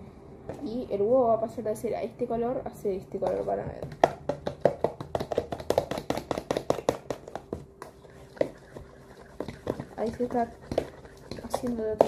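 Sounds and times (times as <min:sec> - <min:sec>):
eggs beaten in plastic container: 0:03.1 - 0:12.0.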